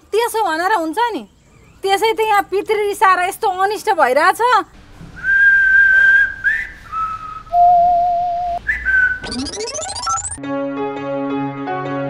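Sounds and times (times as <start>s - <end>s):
person whistling a tune: 5.2s - 9.6s.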